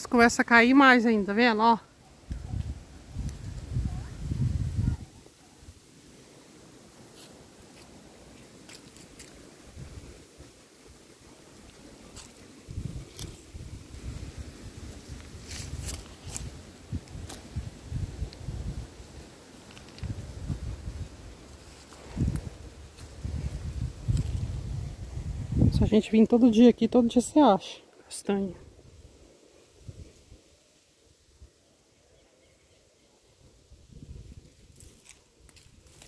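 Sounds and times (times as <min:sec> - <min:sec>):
wind buffeting microphone: 0:02.2 - 0:05.2, 0:12.6 - 0:19.2, 0:20.0 - 0:21.4, 0:22.0 - 0:26.3, 0:33.7 - 0:35.0
footsteps on dry leaves: 0:07.0 - 0:10.0, 0:11.6 - 0:25.1, 0:34.6 - 0:36.0.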